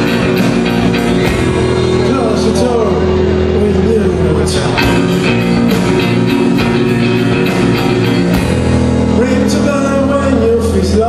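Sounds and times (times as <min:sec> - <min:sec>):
drums: 0:00.0 - 0:11.0
held electric guitar and bass: 0:00.0 - 0:11.0
man singing: 0:03.6 - 0:05.3, 0:09.2 - 0:11.0.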